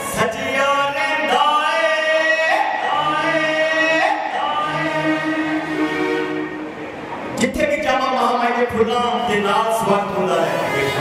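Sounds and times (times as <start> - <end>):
devotional group singing: 0.6 - 6.6.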